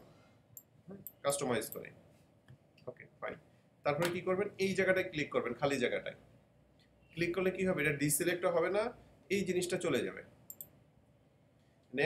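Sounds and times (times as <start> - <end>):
man speaking: 2.9 - 6.2
computer mouse clicks: 10.5 - 10.8.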